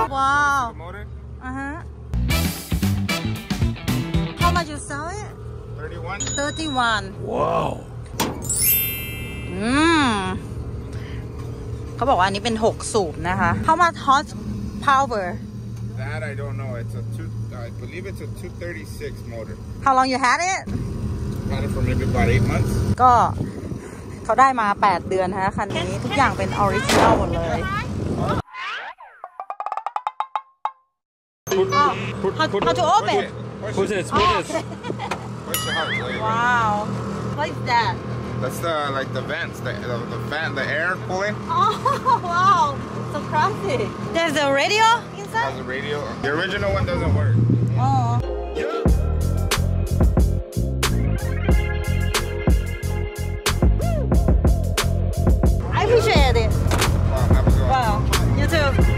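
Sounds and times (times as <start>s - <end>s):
voices talking: 4.4s - 8.1s, 9.0s - 20.7s, 21.4s - 28.4s, 31.5s - 48.9s, 55.6s - 58.9s
hood hinges squeaking: 7.9s - 9.7s
metal hood latch click: 8.1s - 8.5s.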